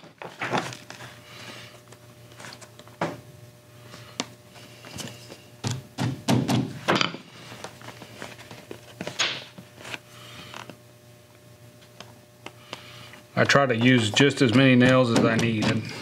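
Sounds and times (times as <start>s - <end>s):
small hammer tapping nails: 13.7s - 15.8s.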